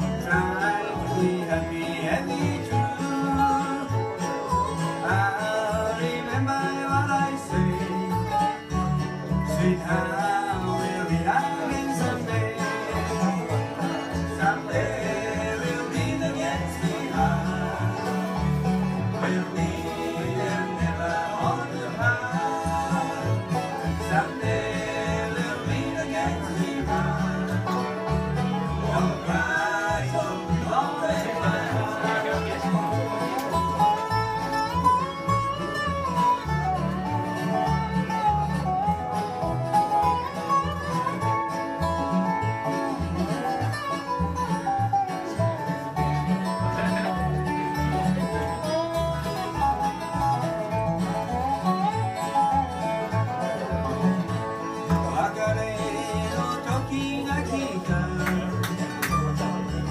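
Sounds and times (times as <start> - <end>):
acoustic guitars: 0.0 - 59.9
banjo: 0.0 - 59.9
fiddle: 0.0 - 59.9
upright bass beat: 52.6 - 59.9.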